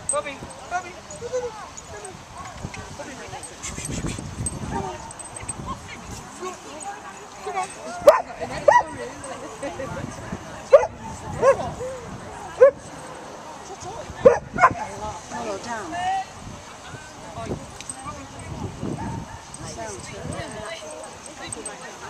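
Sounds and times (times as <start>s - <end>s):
murmur of voices: 0.0s - 22.0s
dog barking: 8.1s - 8.9s, 10.7s - 11.6s, 14.2s - 14.9s.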